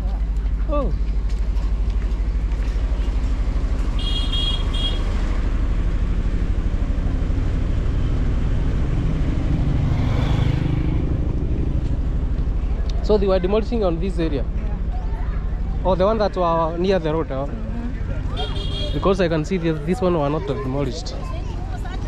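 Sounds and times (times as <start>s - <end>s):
low engine rumble: 0.0s - 22.0s
vehicle passing close: 5.0s - 12.5s.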